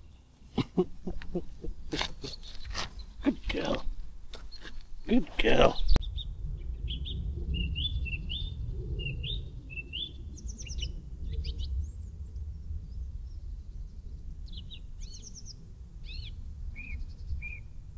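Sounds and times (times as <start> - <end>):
songbirds chirping and calling: 0.0 - 17.9
steady low rumble: 0.8 - 17.9.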